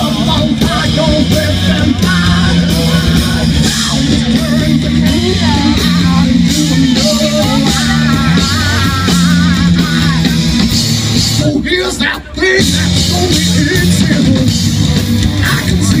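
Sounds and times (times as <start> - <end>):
person singing: 0.0 - 10.5, 11.3 - 14.7
rock band playing live: 0.0 - 16.0.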